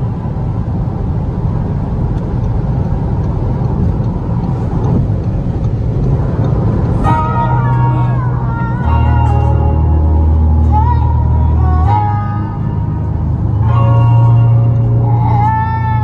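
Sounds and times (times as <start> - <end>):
road and engine rumble: 0.0 - 16.0
music: 7.0 - 16.0.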